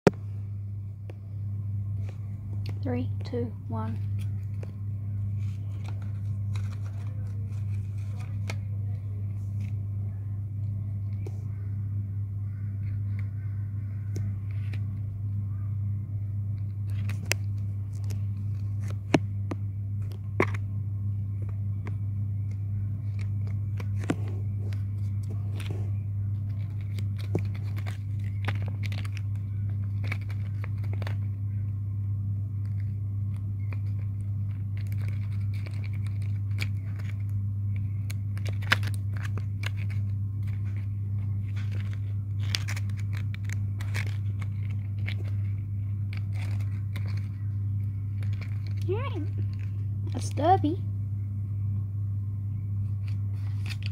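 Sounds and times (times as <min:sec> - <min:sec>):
steady low hum: 0:00.0 - 0:53.9
paper crinkles and taps: 0:04.0 - 0:08.7, 0:16.8 - 0:20.6, 0:21.4 - 0:31.3, 0:32.6 - 0:49.8.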